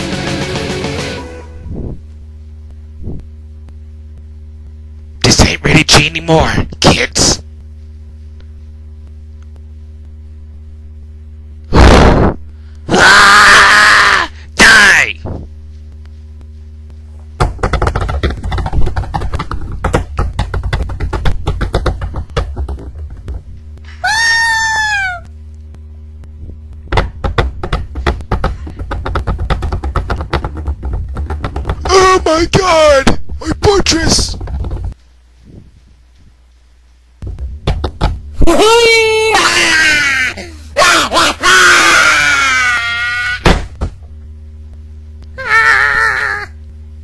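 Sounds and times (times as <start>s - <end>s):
low electrical hum: 0.0s - 47.0s
rapid clatter of sharp cracks: 17.4s - 23.4s
short high falling cry: 23.9s - 25.3s.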